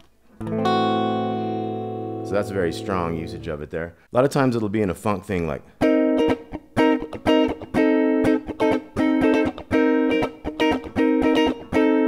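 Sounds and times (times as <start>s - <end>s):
electric guitar funk chord stabs: 0.4s - 3.4s.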